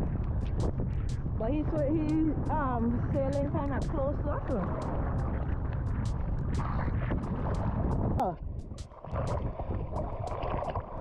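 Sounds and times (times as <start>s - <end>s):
sea water splashing: 0.0s - 11.0s
wind rumble on microphone: 0.0s - 11.0s.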